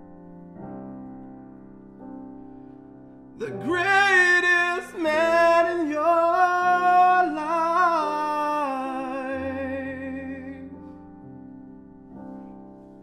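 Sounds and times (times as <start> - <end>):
grand piano: 0.0 - 13.0
man singing with vibrato: 3.4 - 10.7.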